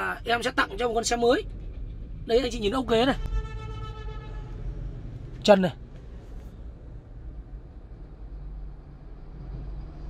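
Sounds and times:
low vehicle rumble: 0.0 - 10.0.

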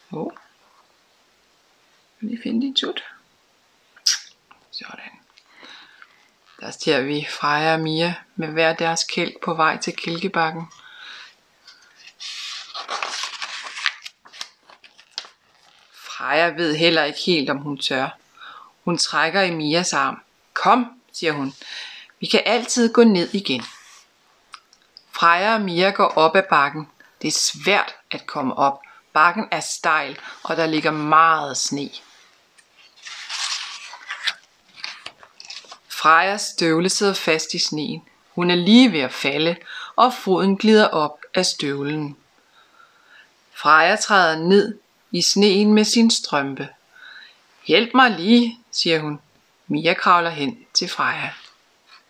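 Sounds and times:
book pages turning: 11.7 - 16.0, 22.5 - 24.1, 32.5 - 35.9
paper crackles and clicks: 11.7 - 16.0, 32.6 - 35.9.

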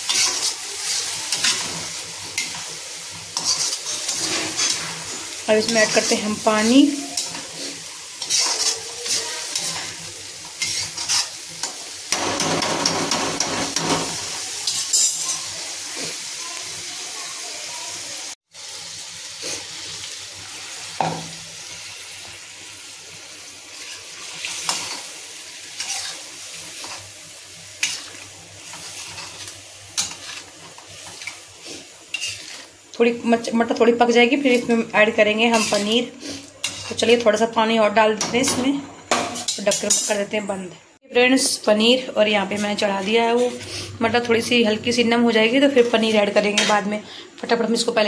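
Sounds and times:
ladle scraping pan: 0.0 - 2.6, 3.4 - 6.3, 7.0 - 11.4, 25.8 - 26.2, 27.8 - 32.7, 35.4 - 37.1
gravy sizzling: 0.0 - 48.0.

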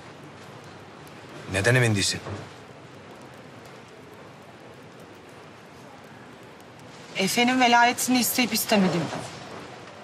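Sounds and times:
cafe room hiss: 0.0 - 10.0
faint ticks: 2.7 - 7.0.

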